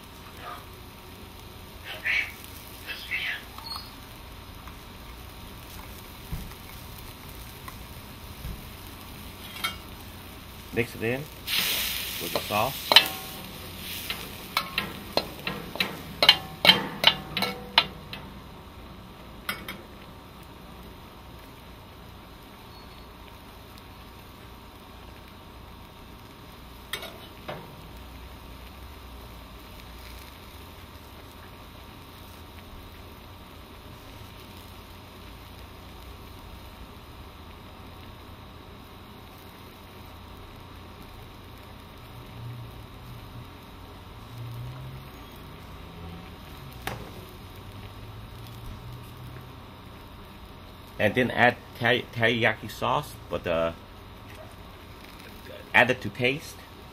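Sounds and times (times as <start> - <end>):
vegetables sizzling in a wok: 0.0 - 56.9
spatula striking pan: 9.4 - 9.9, 11.5 - 18.5, 19.4 - 20.0, 26.9 - 27.8.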